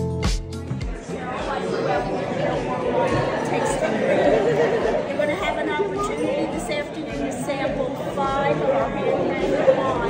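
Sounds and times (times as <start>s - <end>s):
background chatter: 0.6s - 10.0s.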